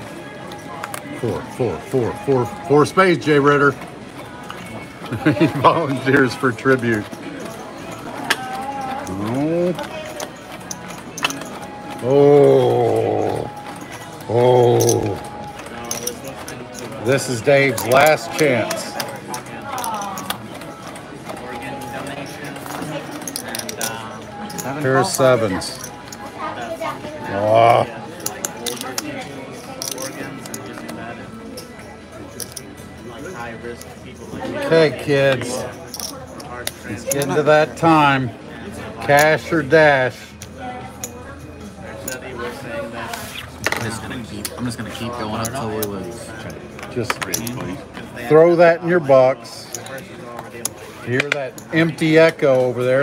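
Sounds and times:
background music: 0.0 - 38.3
background chatter: 0.0 - 53.0
murmur of voices: 0.0 - 53.0
casino chips clicking: 5.9 - 26.3, 27.5 - 37.8.

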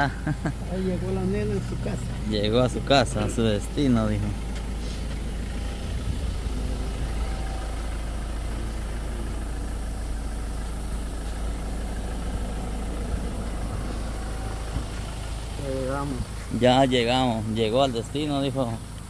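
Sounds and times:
vehicle engine idling: 0.0 - 19.0.

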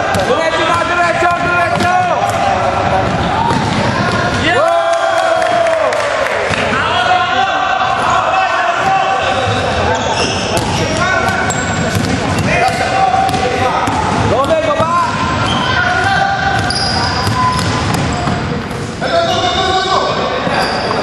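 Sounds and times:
sneakers squeaking: 7.8 - 21.0.

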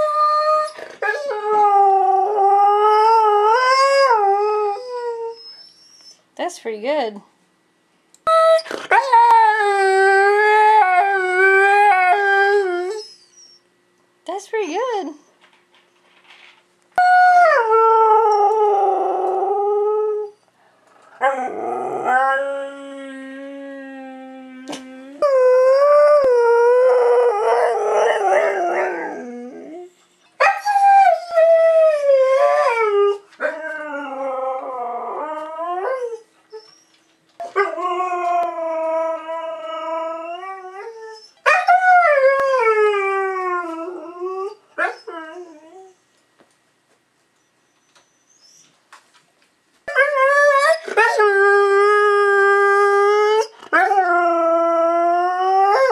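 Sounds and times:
dog howling: 8.3 - 13.6, 17.0 - 20.4, 21.1 - 36.2, 49.9 - 55.9.

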